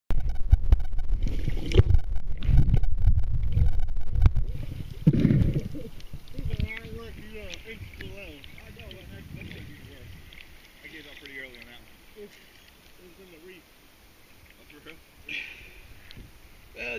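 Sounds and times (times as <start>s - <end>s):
muffled underwater rumbling: 0.1s - 12.8s
knocks and crackles of stirred water: 0.1s - 16.8s.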